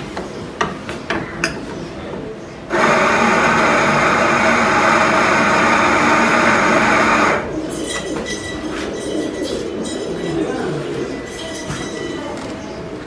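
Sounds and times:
coffee grinder running: 2.7s - 7.5s.

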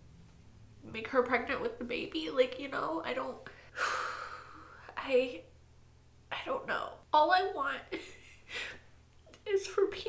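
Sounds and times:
woman's voice: 0.8s - 3.5s, 4.8s - 5.5s, 6.3s - 8.0s, 9.4s - 10.0s.

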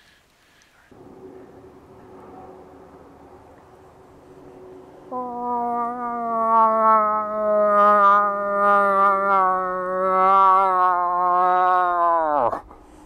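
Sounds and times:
imitated moose call: 5.1s - 12.6s.

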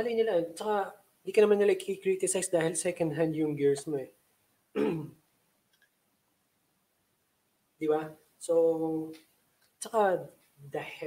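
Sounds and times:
man clearing his throat: 4.8s - 5.2s.

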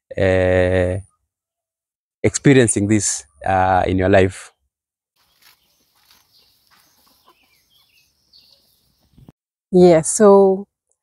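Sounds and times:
chickens clucking: 5.4s - 9.3s.

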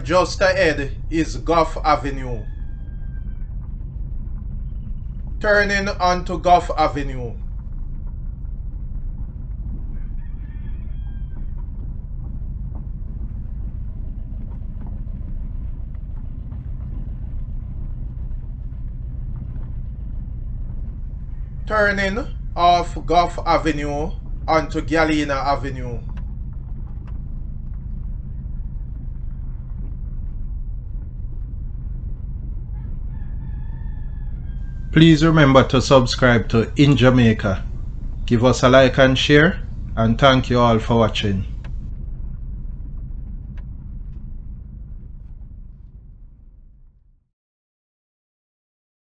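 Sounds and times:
faint rooster crowing: 0.2s - 3.5s, 9.9s - 11.6s, 32.7s - 37.6s.

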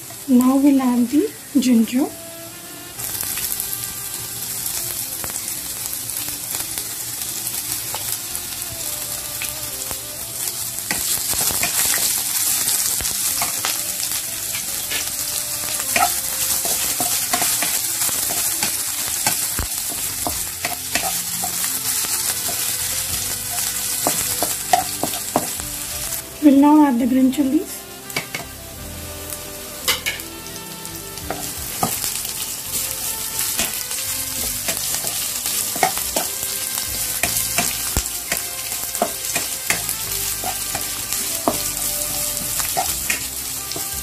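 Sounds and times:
ginger and garlic sizzling in oil: 0.0s - 44.0s
spatula scraping and tapping pan: 10.8s - 25.7s, 28.1s - 28.6s, 29.8s - 30.4s, 31.2s - 44.0s.

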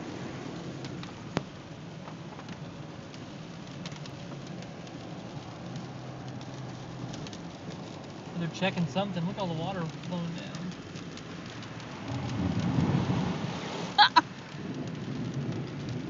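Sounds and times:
car engine and tyre noise: 0.0s - 16.0s
rain ticking on car: 0.0s - 16.0s.

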